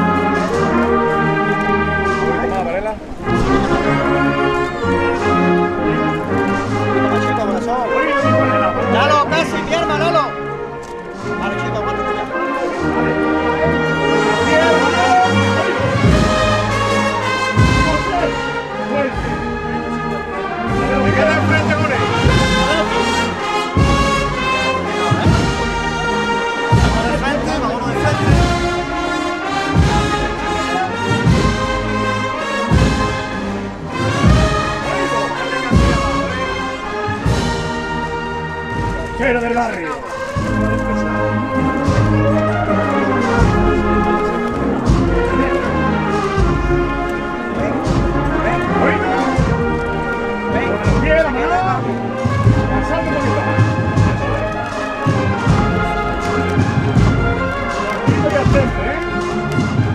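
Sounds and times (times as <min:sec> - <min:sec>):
brass band playing a march: 0:00.0 - 0:59.9
steady drum beat: 0:00.0 - 0:59.9.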